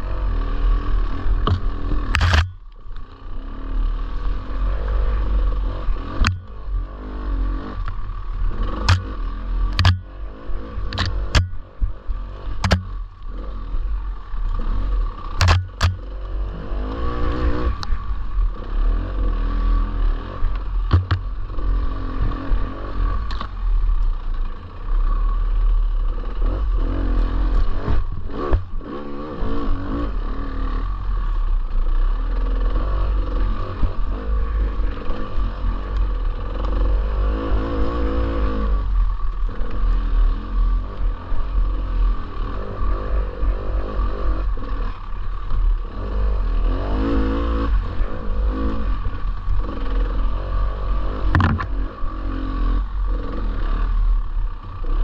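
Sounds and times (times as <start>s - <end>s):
dirt bike engine revving: 0.0s - 55.0s
sharp knocks: 12.6s - 12.9s, 20.9s - 21.3s, 51.3s - 51.7s.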